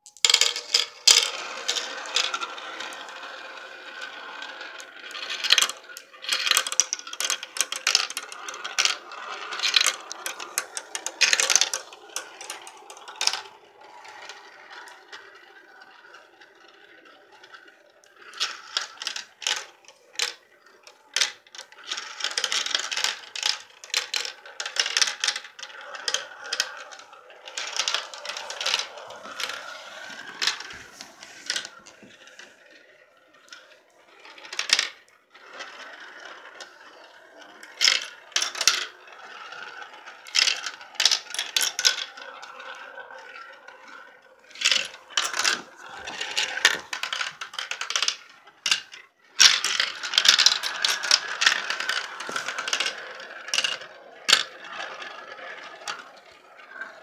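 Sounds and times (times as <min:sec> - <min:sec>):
marbles rolling in plastic run: 0:00.0 - 0:57.0
marbles clicking together: 0:00.1 - 0:32.8, 0:33.4 - 0:57.0.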